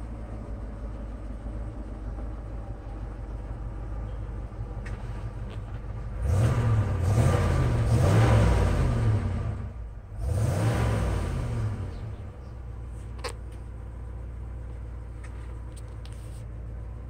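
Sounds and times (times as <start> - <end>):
pickup engine idling and revving: 0.0 - 17.0.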